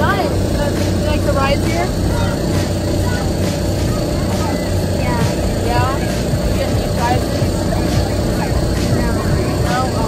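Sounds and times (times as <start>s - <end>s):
electric blower fans humming: 0.0s - 10.0s
faint children's voices: 0.0s - 10.0s.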